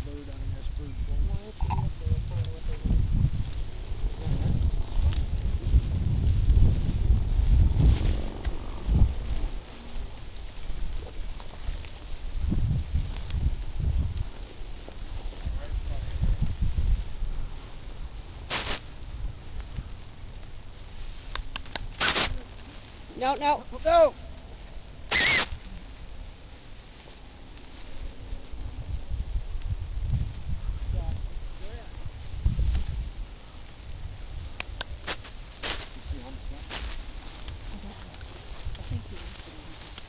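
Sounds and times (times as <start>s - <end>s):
rumbling microphone noise: 0.0s - 40.0s
dog-training whistle blasts: 18.5s - 19.0s, 22.0s - 22.5s, 25.1s - 25.8s, 35.0s - 36.1s, 36.7s - 37.2s.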